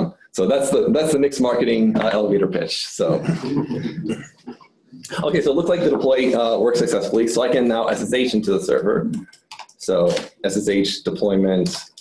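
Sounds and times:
man hesitating speech: 2.8s - 6.7s.

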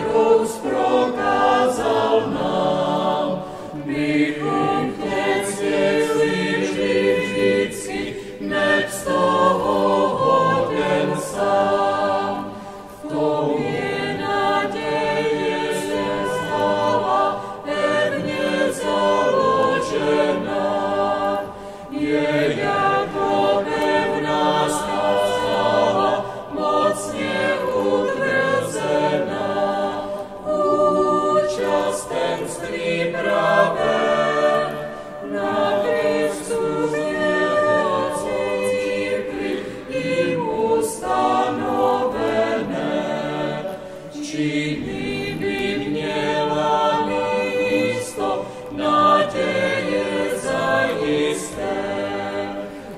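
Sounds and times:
choir singing a hymn: 0.0s - 52.9s.

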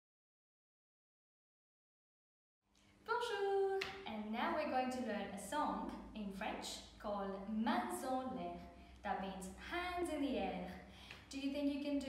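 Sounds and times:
woman speaking: 3.1s - 12.0s.

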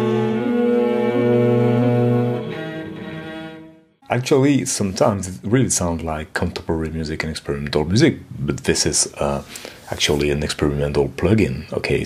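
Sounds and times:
bowed cello notes: 0.0s - 4.6s.

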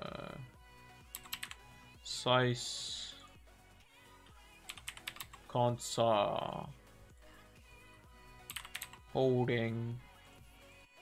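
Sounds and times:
faint background music: 0.0s - 11.0s
computer keyboard typing: 1.1s - 1.6s, 4.6s - 5.5s, 8.5s - 9.0s.

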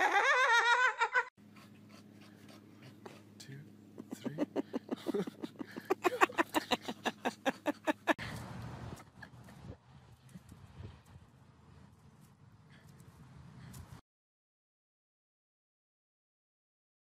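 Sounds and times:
high-pitched wavering laughter: 0.0s - 1.3s, 3.9s - 8.2s
steady low hum: 1.4s - 14.0s.

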